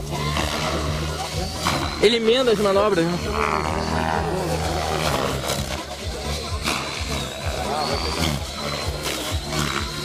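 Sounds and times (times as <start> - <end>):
helicopter motor whine: 0.0 - 10.0
rotor drone: 0.0 - 10.0.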